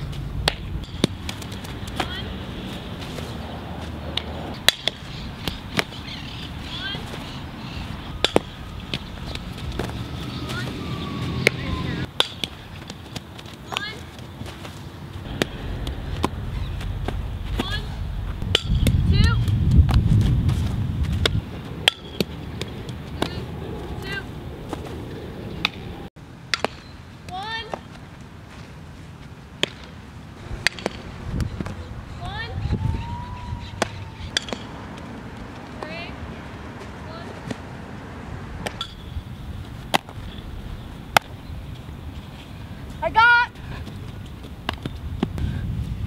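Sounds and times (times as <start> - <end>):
softball off a bat: 8.2 - 13.0, 15.2 - 20.0, 33.8 - 34.7, 39.9 - 40.4, 41.1 - 41.4.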